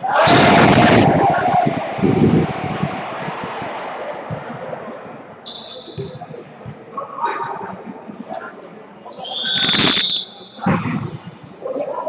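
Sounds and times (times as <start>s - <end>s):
referee's whistle: 5.4s - 6.2s, 9.1s - 10.8s.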